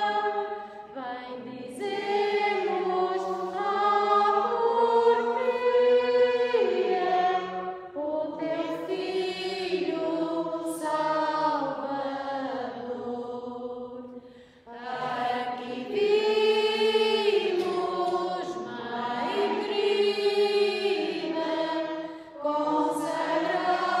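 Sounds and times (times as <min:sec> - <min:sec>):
hymn singing: 0:00.0 - 0:24.0.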